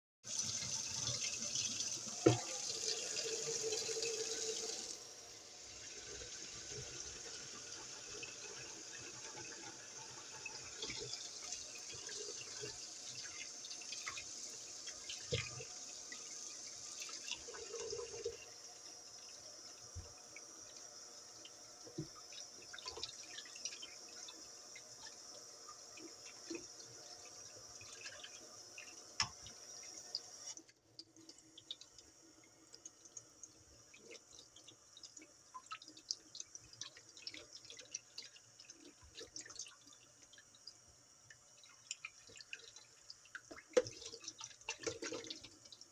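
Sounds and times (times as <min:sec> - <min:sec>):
tap water running into sink: 0:00.3 - 0:45.9.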